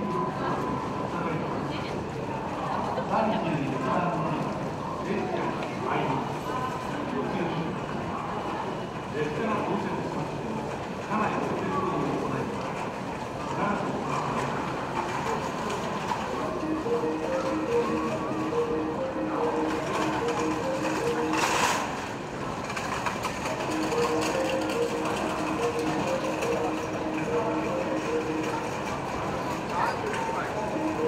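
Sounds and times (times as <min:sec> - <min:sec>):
electric train pulling in: 0:13.9 - 0:31.0.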